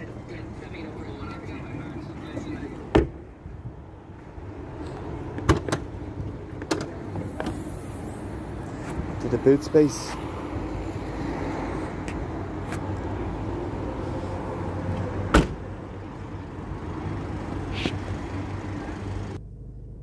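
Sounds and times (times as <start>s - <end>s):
open-air background noise: 0.0s - 20.0s
car tailgate thump: 2.9s - 3.2s, 5.4s - 5.8s, 15.3s - 15.6s
car door click: 15.3s - 15.6s.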